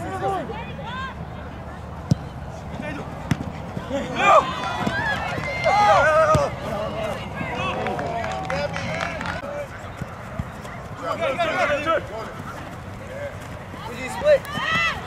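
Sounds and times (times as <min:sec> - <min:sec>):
players shouting: 0:00.0 - 0:15.0.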